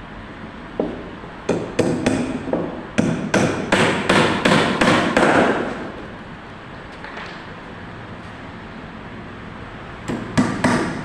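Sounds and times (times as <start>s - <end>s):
hammer driving nails into timber: 0.8s - 5.8s.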